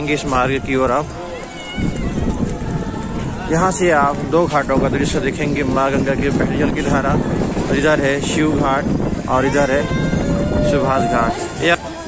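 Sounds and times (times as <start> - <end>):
crowd murmur: 0.0 - 12.0
wind buffeting microphone: 0.0 - 12.0.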